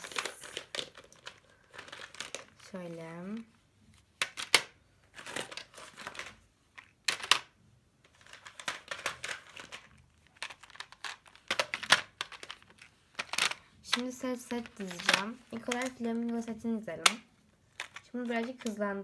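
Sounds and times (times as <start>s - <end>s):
rustling of packs: 0.0s - 3.5s
plastic clicks and clacks: 8.1s - 19.0s.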